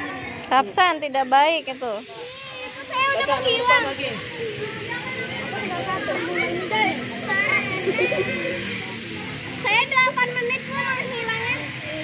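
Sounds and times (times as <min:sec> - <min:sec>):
children chattering and calling: 0:00.0 - 0:12.0
faint high whine: 0:00.0 - 0:12.0.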